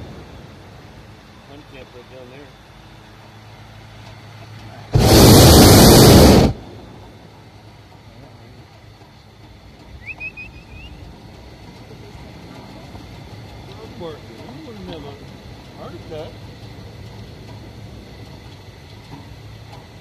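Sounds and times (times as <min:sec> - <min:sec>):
propane burner blast: 0:04.6 - 0:08.1.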